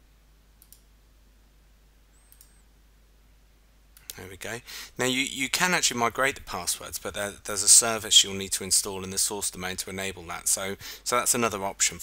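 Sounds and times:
computer mouse clicks: 0.6s - 0.9s, 2.2s - 2.6s.

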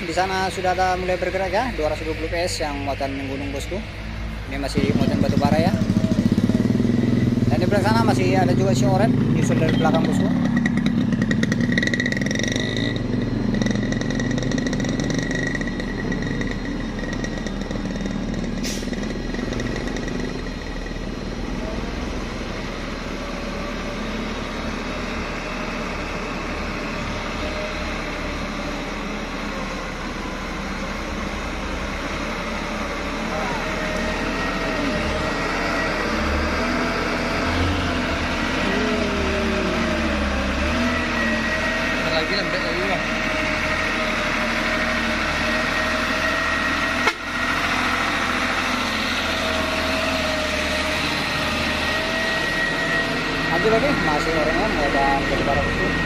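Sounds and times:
truck diesel engine: 0.0s - 56.0s
motorcycle engine idling: 4.8s - 8.6s, 9.2s - 21.4s.

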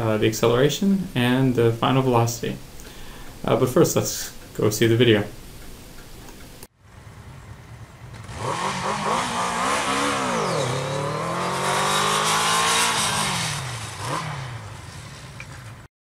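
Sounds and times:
motorcycle accelerating hard: 6.9s - 15.8s.

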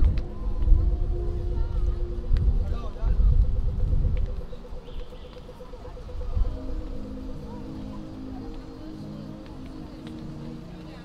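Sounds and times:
low street rumble: 0.0s - 11.0s
passers-by talking: 0.0s - 11.0s
crossing signal ticking: 1.1s - 11.0s.

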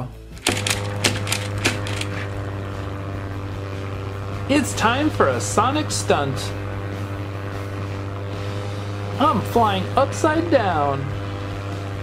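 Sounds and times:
low airplane engine drone: 0.3s - 12.0s
sharp clicks and rattles: 0.4s - 2.4s.

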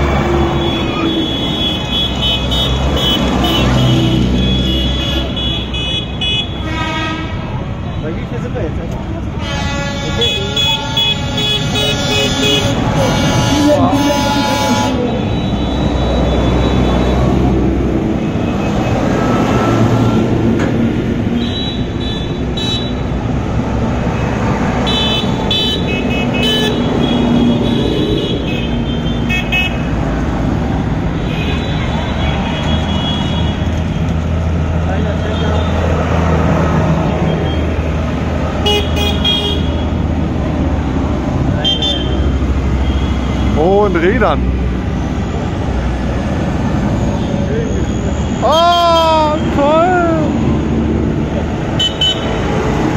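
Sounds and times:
horns honking: 0.0s - 8.6s, 9.2s - 17.6s, 18.2s - 20.5s, 21.3s - 23.3s, 24.0s - 30.1s, 31.0s - 34.2s, 34.9s - 36.0s, 38.5s - 40.1s, 41.5s - 44.4s, 51.7s - 52.8s.

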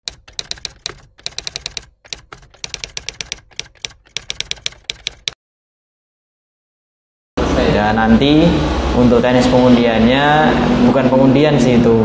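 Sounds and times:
typewriter key clicks: 0.0s - 5.4s.

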